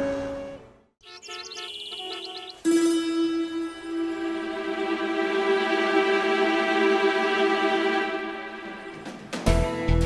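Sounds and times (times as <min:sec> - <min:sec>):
rapid bird chirping: 0:01.0 - 0:02.7
held music chord: 0:01.6 - 0:09.1
soft sustained music: 0:01.8 - 0:10.0.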